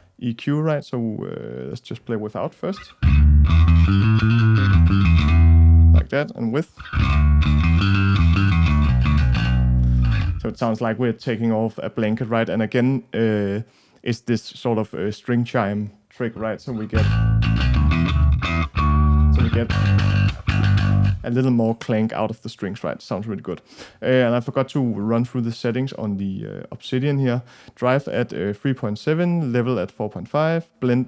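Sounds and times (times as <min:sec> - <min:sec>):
electric bass riff: 0:02.8 - 0:10.6, 0:16.7 - 0:21.3.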